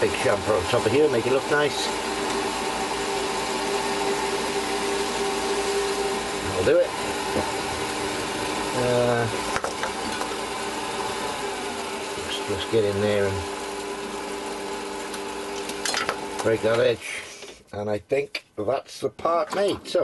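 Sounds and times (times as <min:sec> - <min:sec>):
metal lathe whining: 0:00.0 - 0:17.0.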